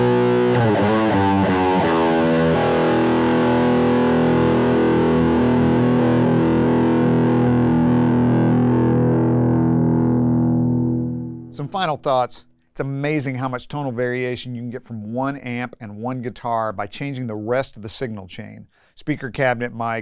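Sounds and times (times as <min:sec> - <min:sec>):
electric guitar notes and chord: 0:00.0 - 0:11.6.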